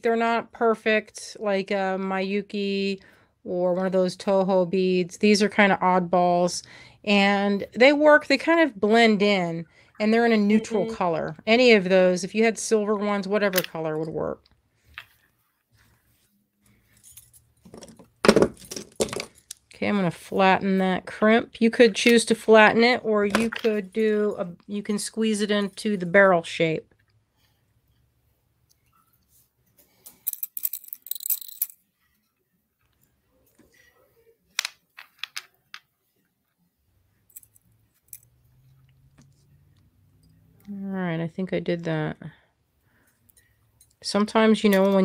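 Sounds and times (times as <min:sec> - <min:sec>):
beads clinking: 0:29.9 - 0:31.9.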